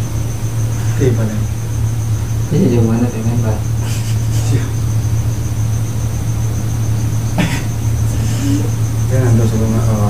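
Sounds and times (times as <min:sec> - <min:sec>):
faint high whine: 0:00.0 - 0:10.0
steady low hum: 0:00.0 - 0:10.0.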